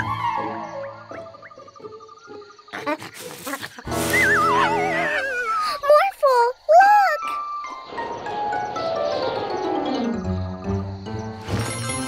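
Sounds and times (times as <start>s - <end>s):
cartoon background music: 0.0s - 5.7s, 7.2s - 12.0s.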